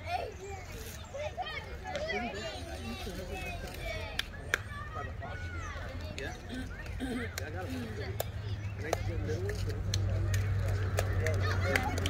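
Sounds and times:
young voices chattering: 0.0 - 12.0.

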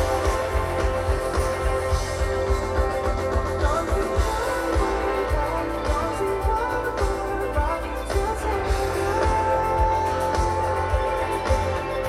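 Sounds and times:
live pop-rock band: 0.0 - 12.0
male lead vocal: 0.0 - 12.0
steady drum beat: 0.0 - 12.0.

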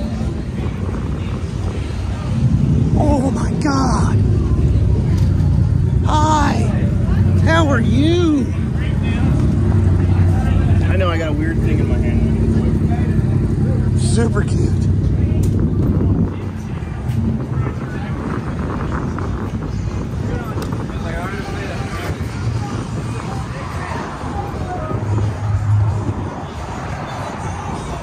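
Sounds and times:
engine droning: 0.0 - 28.0.

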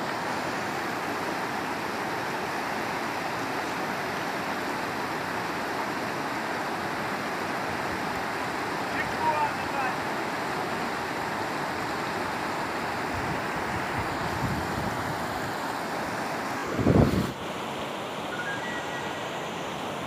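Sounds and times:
river rushing over boulders: 0.0 - 20.0.

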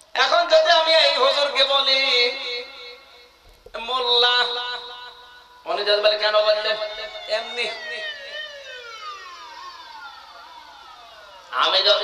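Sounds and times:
man singing through pa system: 0.0 - 8.8, 11.5 - 12.0.

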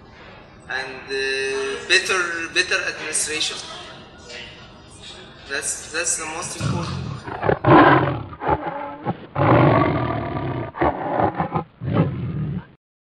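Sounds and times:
big cat roaring and growling: 6.6 - 12.8.

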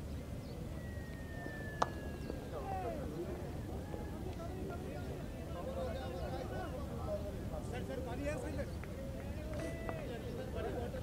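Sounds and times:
open-air rumble: 0.0 - 11.0.

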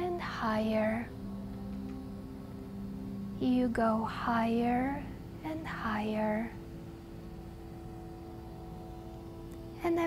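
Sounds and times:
soft sustained tones: 0.0 - 10.0.

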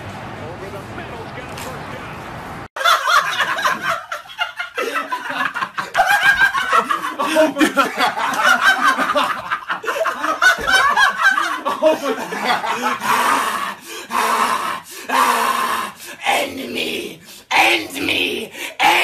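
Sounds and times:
man laughing hard: 2.8 - 15.5
strained breathy vocal noises: 13.0 - 19.0.

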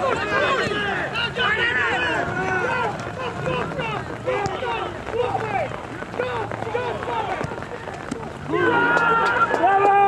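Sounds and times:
voices shouting: 0.0 - 10.0.

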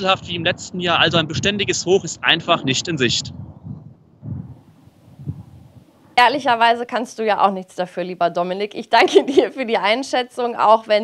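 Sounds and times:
wind buffeting microphone: 0.0 - 6.7.

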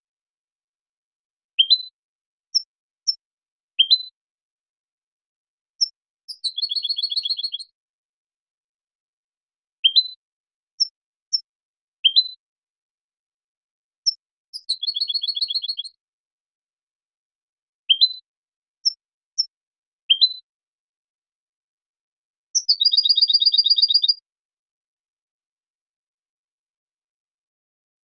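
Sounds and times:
finch song with trills: 1.6 - 3.2, 3.8 - 4.2, 5.8 - 7.7, 9.8 - 12.4, 14.0 - 16.0, 17.9 - 20.5, 22.6 - 24.2.

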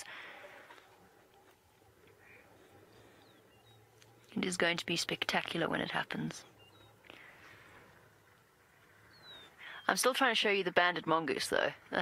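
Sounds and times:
faint bird chirps: 1.2 - 4.5, 5.3 - 10.1.

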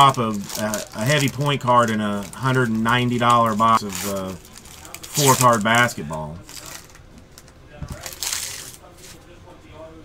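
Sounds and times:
foil wrapper crinkling: 0.0 - 9.2.

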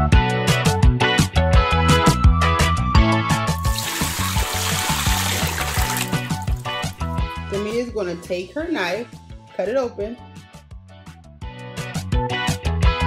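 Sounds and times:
tap water running into sink: 3.6 - 7.2
music with steady beat: 10.4 - 13.0.

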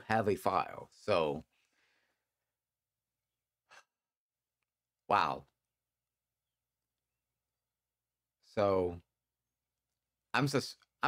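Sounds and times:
man breathing faintly: 1.5 - 2.4.

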